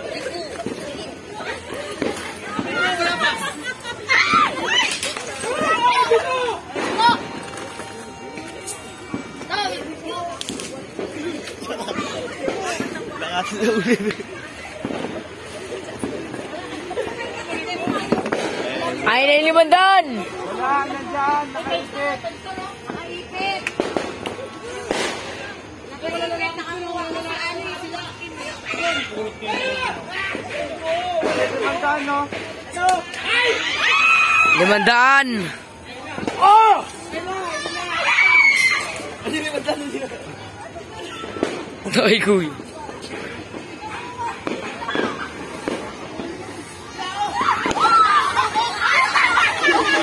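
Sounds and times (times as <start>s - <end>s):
people talking: 0.0s - 19.0s, 38.9s - 50.0s
firecracker bangs: 4.5s - 11.2s, 14.7s - 16.4s, 17.8s - 19.6s, 22.6s - 25.6s, 41.2s - 48.4s
firecracker pops: 14.8s - 15.3s, 17.8s - 18.9s, 22.9s - 25.6s, 36.1s - 36.5s, 41.3s - 46.6s, 47.6s - 48.1s.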